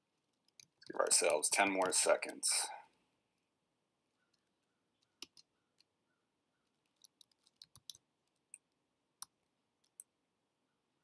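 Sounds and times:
keyboard typing clicks: 4.3s - 5.9s, 6.9s - 10.1s.

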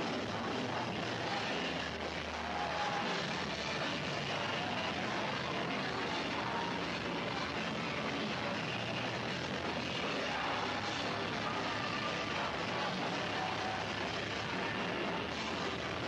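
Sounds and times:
distorted punk band playing live: 0.0s - 16.0s.

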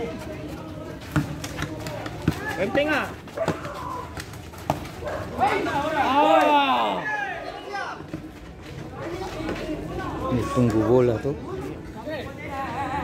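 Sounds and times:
men shouting calls: 5.2s - 8.0s.

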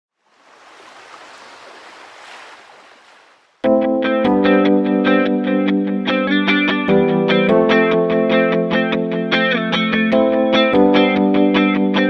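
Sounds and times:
small waves washing on shore: 0.1s - 3.6s.

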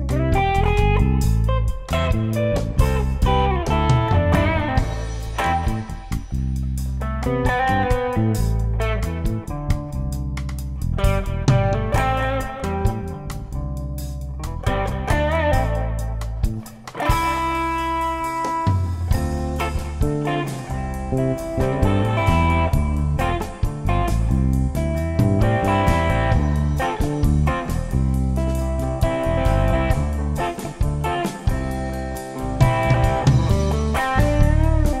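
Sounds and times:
drum kit: 0.0s - 35.0s
electric bass: 0.0s - 35.0s
electric guitar lead melody: 0.0s - 35.0s.

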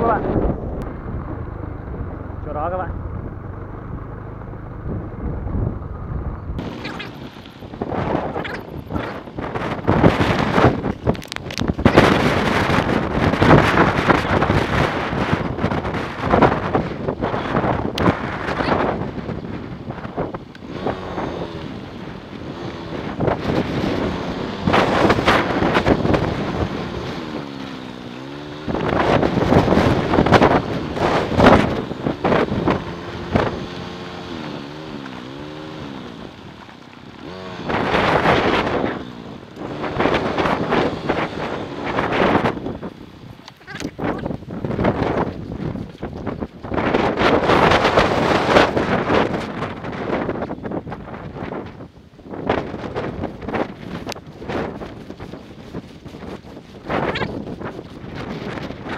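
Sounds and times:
motorbike engine running: 0.0s - 58.9s
wind buffeting microphone: 0.0s - 58.9s.

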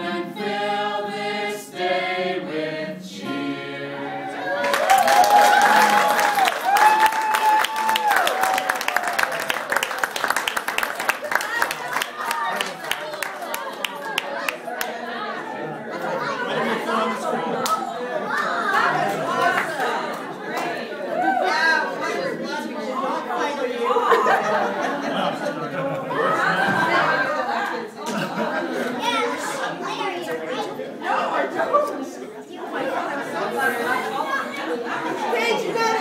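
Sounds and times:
people chattering: 0.0s - 36.0s
overlapping indistinct conversation: 4.2s - 36.0s.

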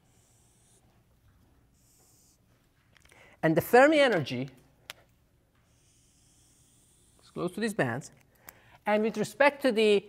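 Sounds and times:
marker hissing on whiteboard: 0.0s - 1.0s, 1.7s - 2.5s, 5.6s - 7.6s.

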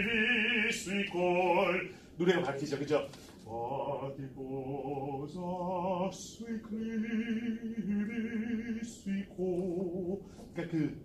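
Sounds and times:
person singing with vibrato: 0.0s - 2.7s, 3.4s - 11.0s.

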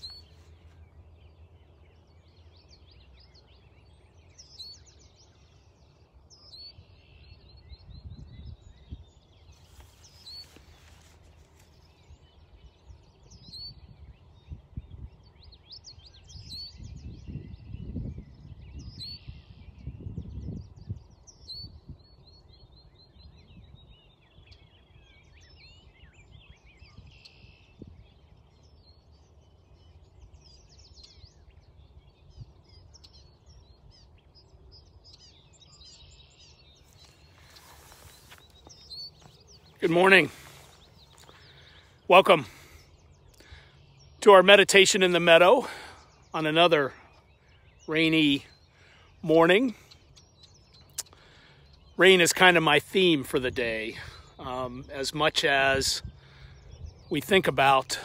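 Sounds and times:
wind rumbling on microphone: 0.0s - 44.2s, 53.4s - 57.4s
birds singing and chirping: 0.0s - 58.0s.

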